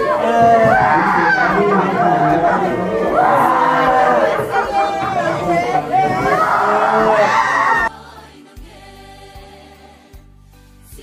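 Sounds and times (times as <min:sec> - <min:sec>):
crowd talking: 0:00.0 - 0:07.9.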